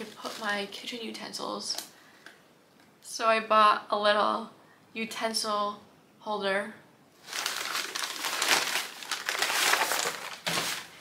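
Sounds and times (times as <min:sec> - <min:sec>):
packing paper crinkling: 0:00.0 - 0:00.9, 0:07.2 - 0:11.0.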